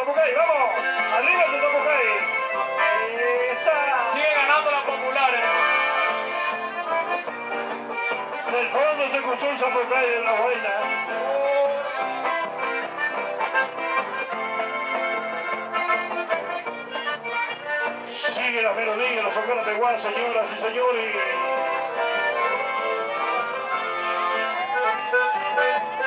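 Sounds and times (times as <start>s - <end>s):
accordion dance music: 0.0s - 26.0s
person singing: 18.1s - 26.0s.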